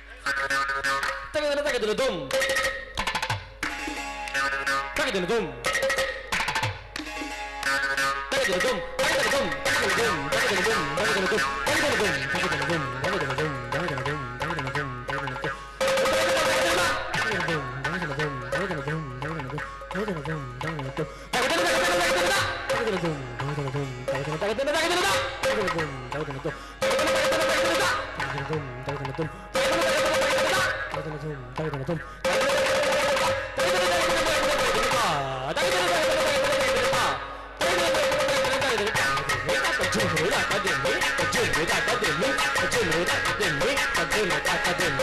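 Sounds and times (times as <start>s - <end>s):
ghatam clay pot drum: 0.2s - 45.0s
percussion ensemble playing: 1.0s - 45.0s
person reciting rhythmic syllables: 8.4s - 45.0s.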